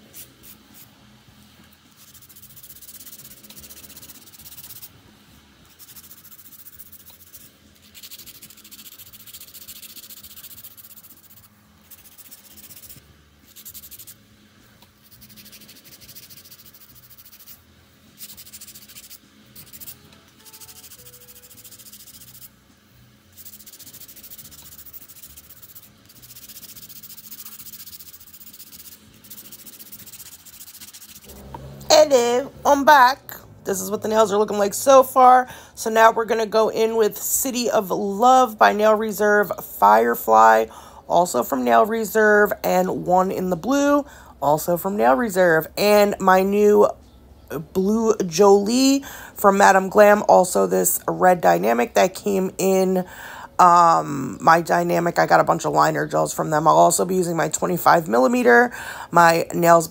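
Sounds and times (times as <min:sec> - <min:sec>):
nail file rasping on nails: 0:01.9 - 0:05.0, 0:05.7 - 0:14.2, 0:15.0 - 0:22.6, 0:23.3 - 0:31.4.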